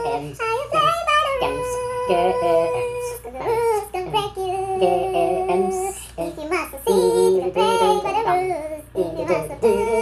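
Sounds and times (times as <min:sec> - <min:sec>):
man and woman singing: 0:00.0 - 0:10.0.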